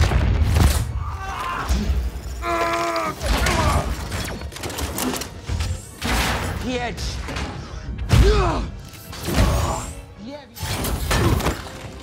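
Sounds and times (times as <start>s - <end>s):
film score music: 0.0s - 12.0s.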